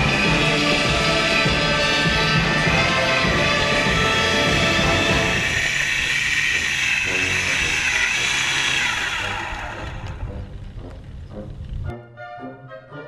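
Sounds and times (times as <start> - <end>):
model plane engine whine: 0.0 - 11.9
background music: 0.0 - 13.0.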